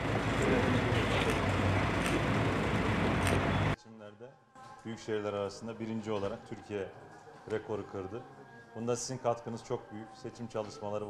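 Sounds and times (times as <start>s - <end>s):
low hum: 0.0s - 3.8s
nearby motor vehicles: 0.0s - 3.8s.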